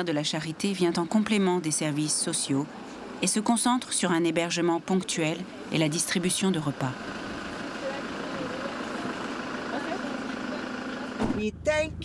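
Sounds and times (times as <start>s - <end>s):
van engine noise: 4.1s - 12.0s
faint voices: 4.9s - 11.2s.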